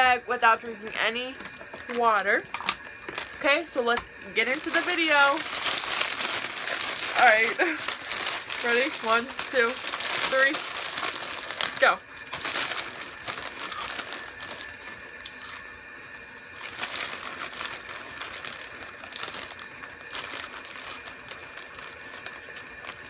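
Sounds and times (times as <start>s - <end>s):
plastic chip bags crinkling: 1.4s - 23.0s.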